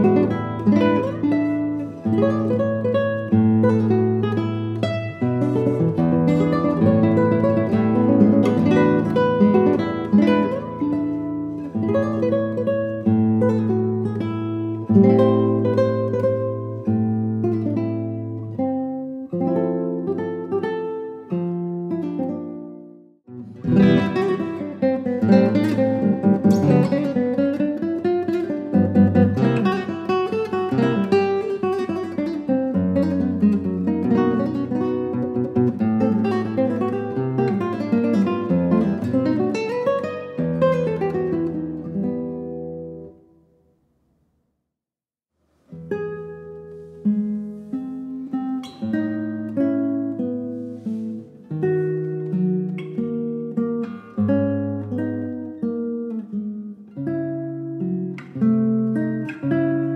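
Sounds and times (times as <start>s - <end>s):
fingerpicked classical guitar: 0.0s - 44.0s, 45.4s - 59.9s.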